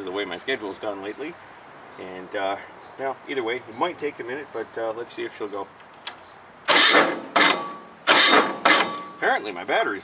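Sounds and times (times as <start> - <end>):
diesel engine starter cranking: 6.2 - 9.2.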